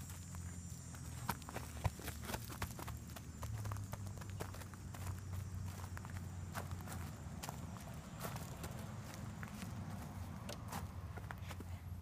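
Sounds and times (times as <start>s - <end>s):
footsteps crunching on mulch: 0.0s - 11.8s.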